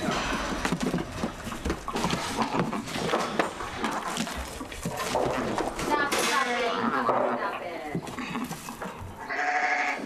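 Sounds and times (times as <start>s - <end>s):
sheep bleating: 9.2s - 10.0s.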